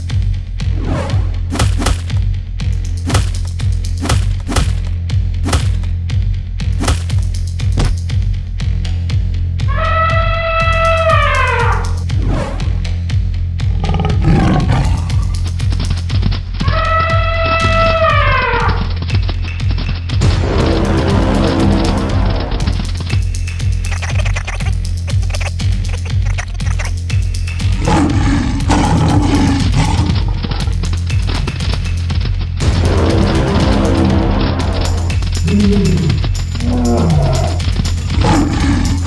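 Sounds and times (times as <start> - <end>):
background music with low beat: 0.0 - 39.0
tiger roaring: 13.6 - 15.5, 27.6 - 30.8, 32.9 - 39.0.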